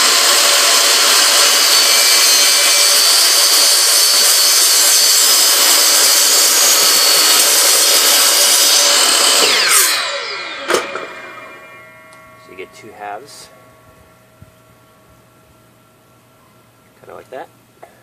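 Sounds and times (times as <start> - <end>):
miter saw cutting plastic: 0.0 - 12.0
saw winding down whine: 0.0 - 16.7.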